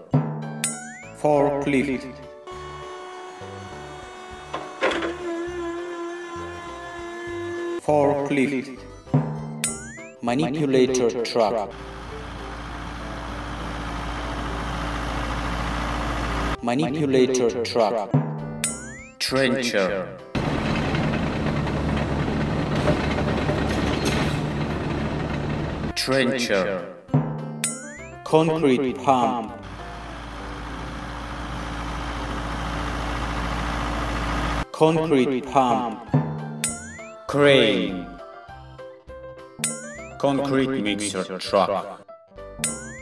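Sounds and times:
forklift mechanical whine: 2.3s - 7.8s, 11.7s - 16.6s, 20.4s - 26.0s, 29.5s - 34.7s
forklift clunk: 3.4s - 5.8s, 20.4s - 26.0s.

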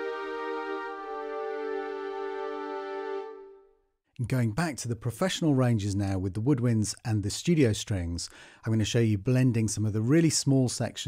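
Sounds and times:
orchestral chord on strings and woodwinds: 0.0s - 3.8s.

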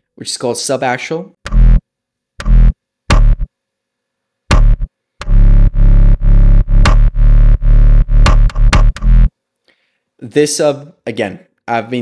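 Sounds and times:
sub-bass synth stabs: 1.5s - 1.8s, 2.4s - 3.5s, 4.5s - 9.3s.

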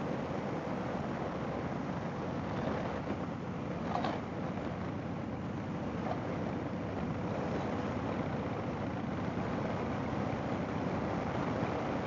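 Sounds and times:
motorcycle engine cruising: 0.0s - 12.0s
wind rush: 0.0s - 12.0s.

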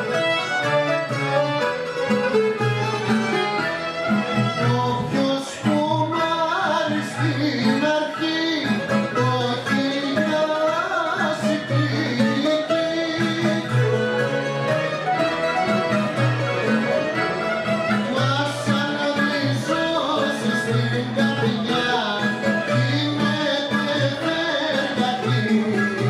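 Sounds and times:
accordion: 0.0s - 26.0s
bouzouki: 0.0s - 26.0s
guitar: 0.0s - 26.0s
live folk band playing: 0.0s - 26.0s
violin: 0.0s - 26.0s.

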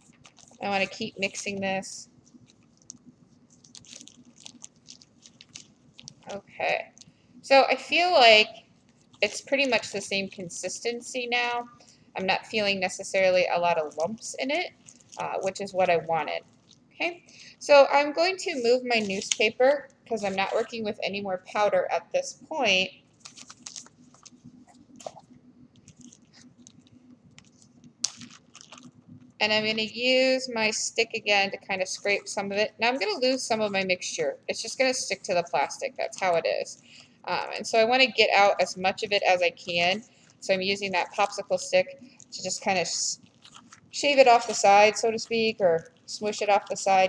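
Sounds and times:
plastic bag crinkling and squishing: 0.0s - 7.2s, 7.9s - 17.5s, 18.2s - 21.0s, 23.0s - 47.0s.

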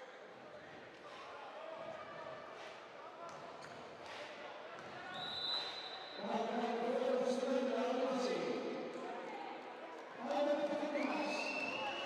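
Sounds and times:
arena murmur and voices: 0.0s - 12.0s.

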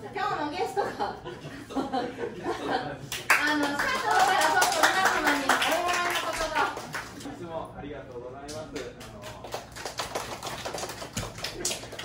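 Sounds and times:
audience clapping: 3.1s - 7.3s, 8.5s - 12.0s.

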